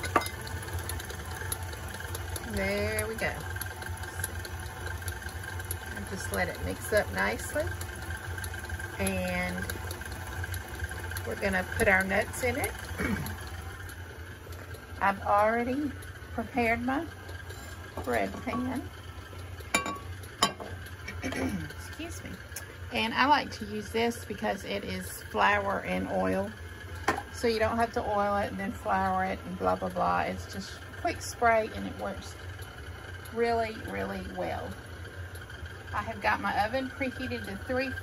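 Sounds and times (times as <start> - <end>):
stand mixer motor hum: 0.0 - 38.0
glass pan clink: 19.8 - 20.7.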